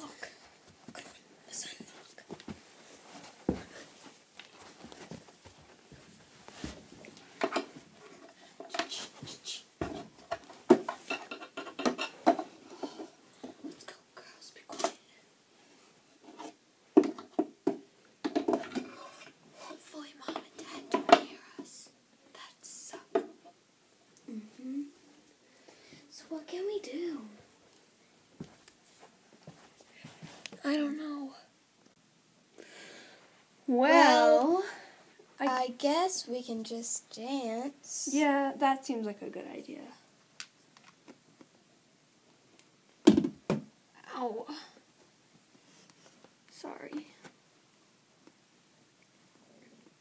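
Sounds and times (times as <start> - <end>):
soft whispering: 0.0 - 2.5, 8.7 - 9.8, 13.6 - 15.3, 19.0 - 23.2, 24.2 - 25.2
plastic toys clicking and knocking: 10.2 - 12.5, 17.0 - 19.3.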